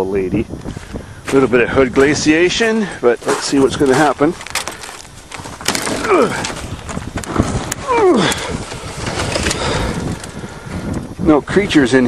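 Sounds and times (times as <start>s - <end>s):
frozen snow crunching: 3.1s - 8.1s
car hood creaking: 4.4s - 10.4s.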